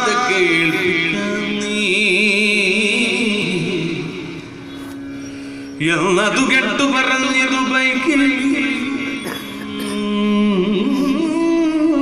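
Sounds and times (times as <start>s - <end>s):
man chanting: 0.0s - 4.3s, 5.8s - 12.0s.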